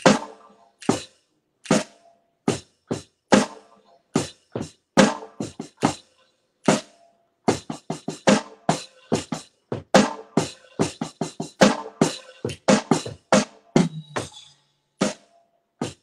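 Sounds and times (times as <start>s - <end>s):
drum hits with wooden sticks: 4.2s - 6.0s.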